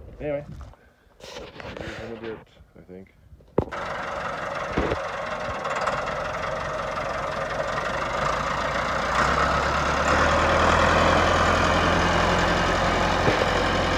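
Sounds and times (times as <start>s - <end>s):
tractor diesel engine running: 3.6s - 13.9s.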